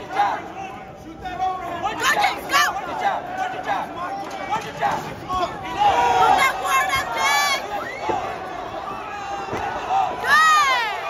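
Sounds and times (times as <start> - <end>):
people shouting: 0.0 - 0.9, 1.6 - 11.0.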